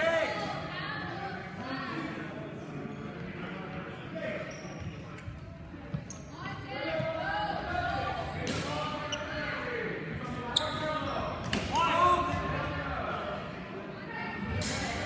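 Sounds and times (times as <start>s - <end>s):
indistinct voices in echoing hall: 0.0s - 15.0s.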